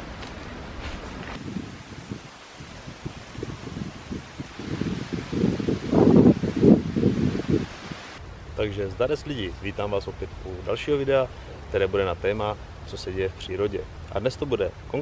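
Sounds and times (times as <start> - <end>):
wind gusting on microphone: 0.0 - 12.0
leaves rustling: 0.0 - 15.0.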